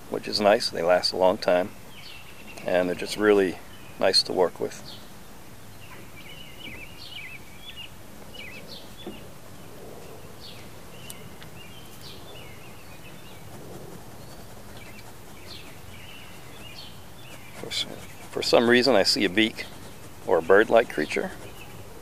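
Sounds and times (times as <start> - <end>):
birds chirping: 0.0 - 22.0
outdoor background hiss: 0.0 - 22.0.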